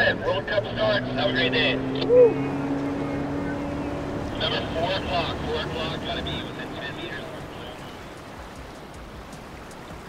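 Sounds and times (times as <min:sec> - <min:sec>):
small waves lapping on beach: 0:00.0 - 0:10.0.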